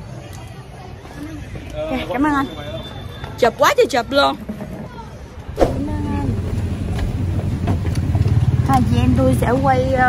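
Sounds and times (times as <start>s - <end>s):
car engine and road noise: 5.6s - 10.0s.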